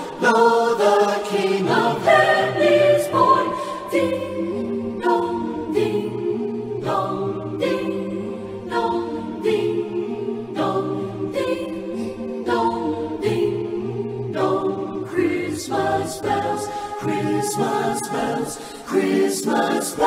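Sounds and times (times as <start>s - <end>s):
choir singing unaccompanied: 0.0s - 20.0s.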